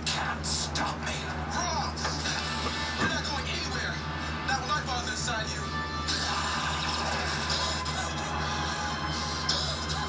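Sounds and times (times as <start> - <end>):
dramatic music from television: 0.0 - 10.0
steady low hum: 0.0 - 10.0.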